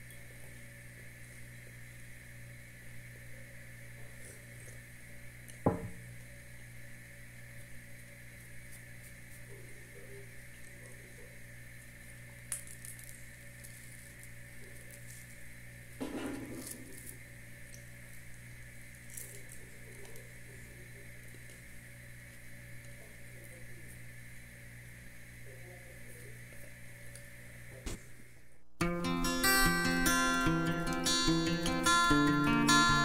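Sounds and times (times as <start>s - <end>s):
cup knocking on table: 5.6s - 6.0s
bread tearing rustle: 7.4s - 24.2s.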